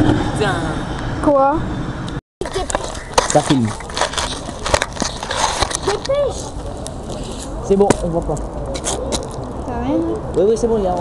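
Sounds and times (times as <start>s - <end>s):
gravel crunching: 2.4s - 9.7s.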